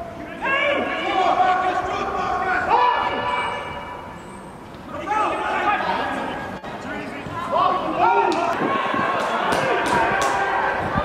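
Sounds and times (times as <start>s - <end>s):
men shouting long calls: 0.0s - 3.8s, 7.3s - 10.8s.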